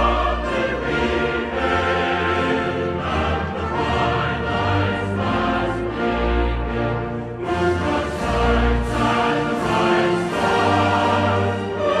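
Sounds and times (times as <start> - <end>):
choir singing: 0.0 - 12.0
orchestral accompaniment: 0.0 - 12.0.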